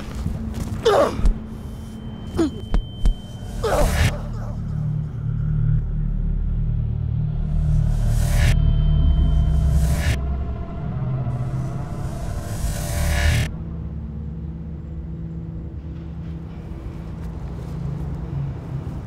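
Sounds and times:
man groaning in pain: 0.8 - 1.3, 2.4 - 2.7
low cinematic rumble: 4.1 - 16.8.

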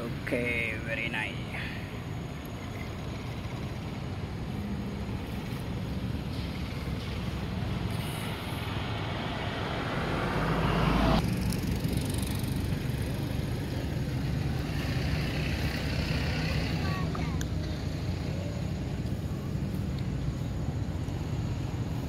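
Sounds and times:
low traffic rumble: 0.0 - 22.0
vehicle passing: 0.0 - 22.0.

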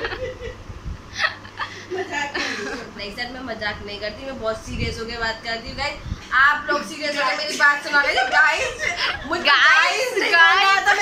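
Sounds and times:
girl and woman laughing: 0.0 - 3.0.

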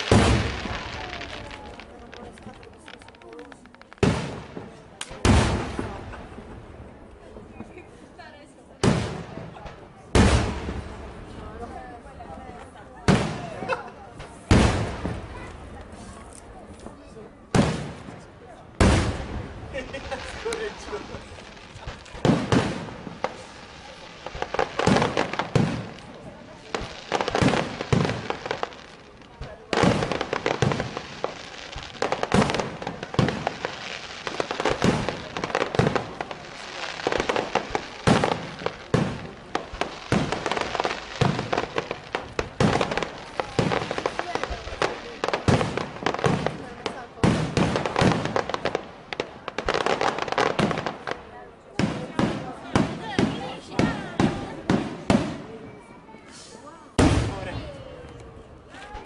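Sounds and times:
fireworks bangs and crackles: 0.0 - 59.0.

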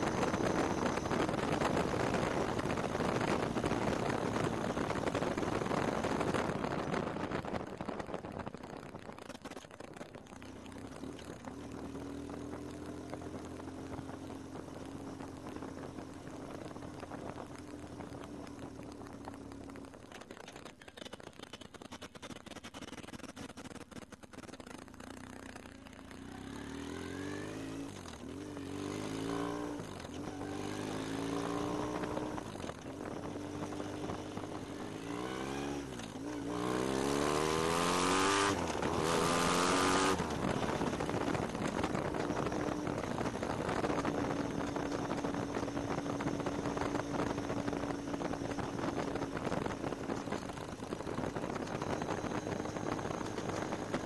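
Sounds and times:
motorcycle engine hum: 0.0 - 54.0
wind and road noise: 0.0 - 54.0.

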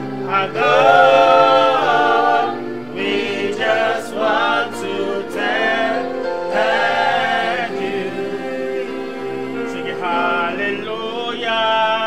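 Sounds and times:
voices holding low notes: 0.0 - 12.0
man singing gospel: 0.2 - 12.0.

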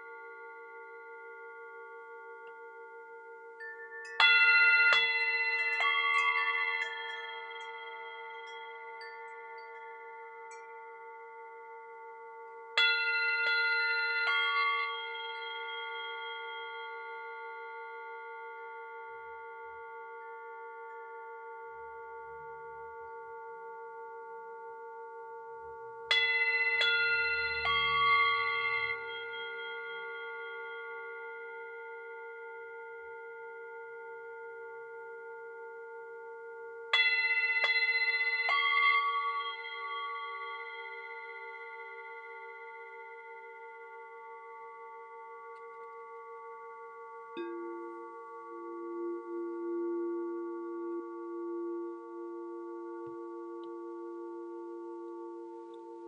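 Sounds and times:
singing bowls ringing: 0.0 - 56.0
metal chimes struck: 3.6 - 12.1, 12.8 - 18.1, 26.1 - 31.4, 37.0 - 50.9.

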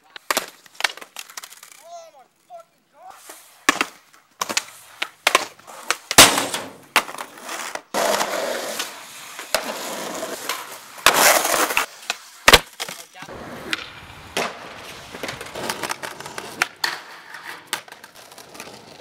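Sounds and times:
skateboard wheels rolling on concrete: 0.0 - 19.0
skateboard clacks: 3.6 - 19.0.

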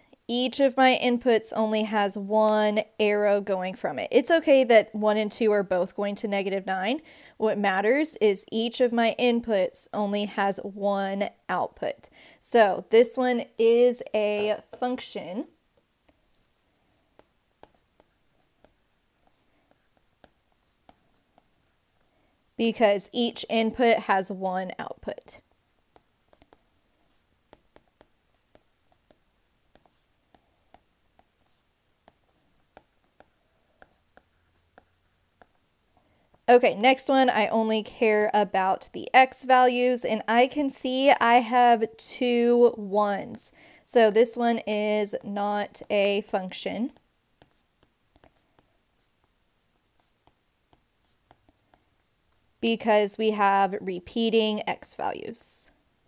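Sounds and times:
stylus scratching strokes: 12.6 - 22.1, 22.7 - 36.5, 44.0 - 52.4.

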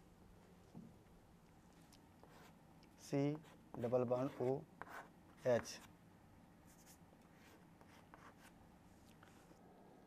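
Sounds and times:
chalk scratching on chalkboard: 2.2 - 2.6, 3.3 - 5.9, 6.7 - 8.6.

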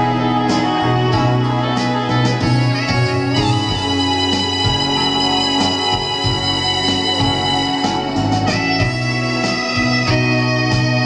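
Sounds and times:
instrumental backing track on speaker: 0.0 - 11.0.

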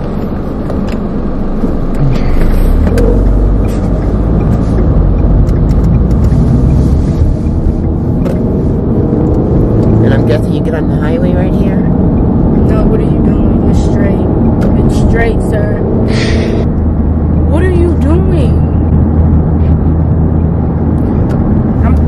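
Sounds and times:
car road and engine rumble: 0.0 - 22.0.

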